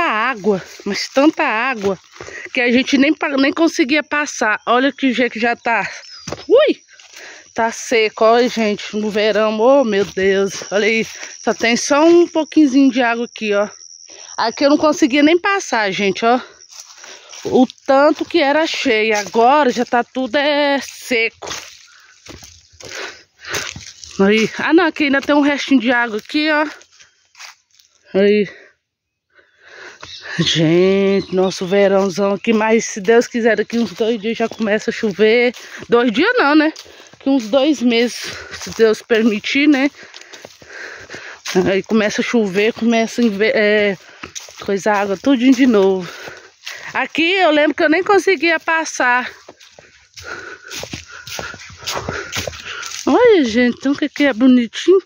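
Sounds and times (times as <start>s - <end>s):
footsteps crunching on dry leaves: 0.0s - 2.6s, 6.0s - 11.8s, 16.6s - 28.1s, 30.0s - 54.4s
leaves and brush rustling: 0.0s - 2.7s, 6.0s - 11.8s, 16.6s - 28.1s, 30.0s - 54.7s.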